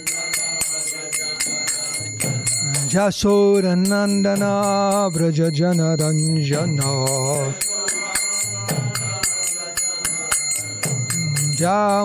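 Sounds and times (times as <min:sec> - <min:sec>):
small hand cymbals striking: 0:00.0 - 0:12.0.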